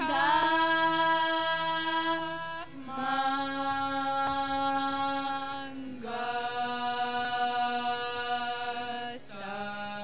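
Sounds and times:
harmonium: 0.0s - 10.0s
women singing devotional music: 0.0s - 10.0s.

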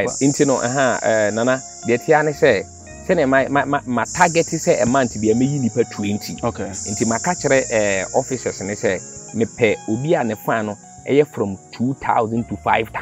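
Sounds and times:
high-pitched insect chorus: 0.0s - 13.0s
man speaking: 0.0s - 13.0s.

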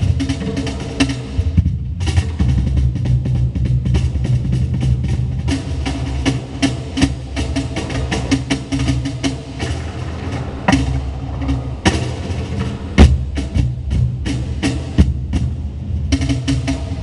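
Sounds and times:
deep cajon bass tones: 0.0s - 17.0s.

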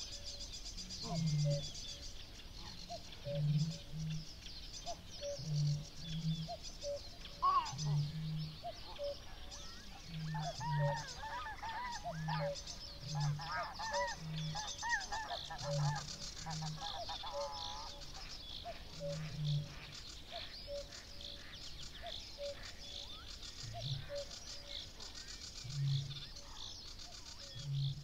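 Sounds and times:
songbird song: 0.0s - 28.0s
cuckoo calling: 1.0s - 2.0s, 2.6s - 4.2s, 4.8s - 25.0s
geese honking: 7.4s - 8.2s, 10.1s - 18.2s.

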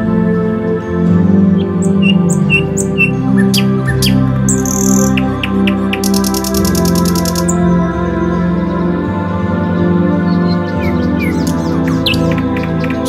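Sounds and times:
birds chirping: 0.0s - 13.0s
soft ambient music: 0.0s - 13.0s.

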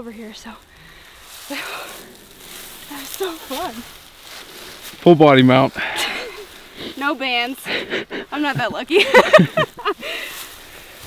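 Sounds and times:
clothing and grass rustling: 0.0s - 11.0s.

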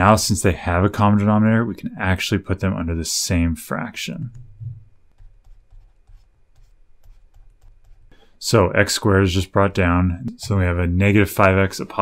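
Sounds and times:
soft low thuds: 4.3s - 8.1s
stylus tapping on drawing tablet: 4.4s - 8.2s.

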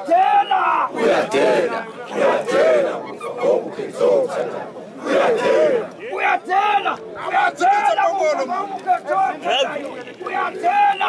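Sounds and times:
men chanting and shouting in unison: 0.0s - 11.0s.

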